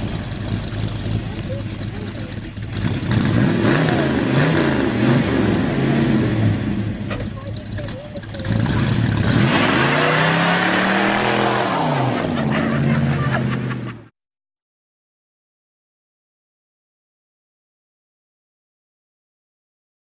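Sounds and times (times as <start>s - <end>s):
car engine revving: 0.0s - 14.0s.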